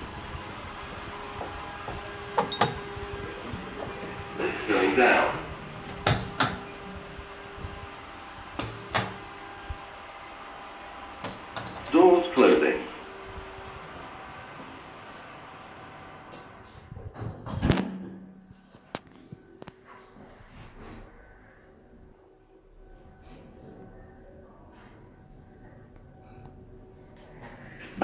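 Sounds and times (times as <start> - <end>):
lift running hum: 0.0 - 18.6.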